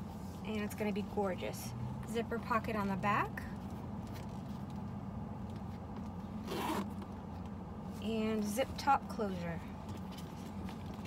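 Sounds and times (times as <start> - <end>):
handbag zipper zip: 6.4 - 7.0.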